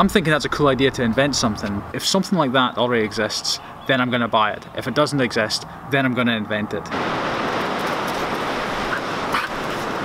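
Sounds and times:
surf rushing: 6.9s - 10.0s
wind on microphone: 6.9s - 10.0s
dog high call: 8.9s - 9.8s.

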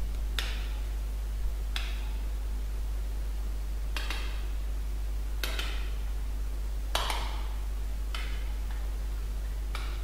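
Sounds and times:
low electrical hum: 0.0s - 10.0s
sharp clicks: 5.4s - 5.9s, 8.1s - 8.5s.

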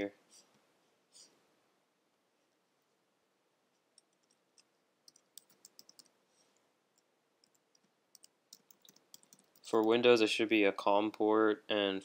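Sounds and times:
keyboard typing clicks: 4.0s - 6.1s, 7.0s - 10.0s.

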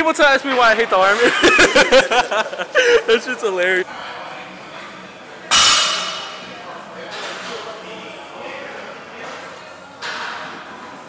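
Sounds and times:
metallic clang of gym weights: 5.5s - 6.4s.

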